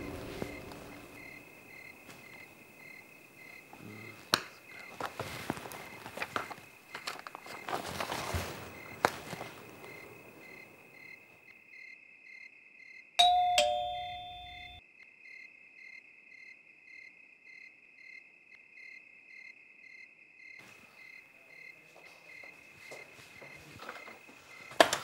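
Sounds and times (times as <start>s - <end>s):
crickets chirping: 0.0s - 25.0s
ding-dong doorbell chime: 13.2s - 14.8s.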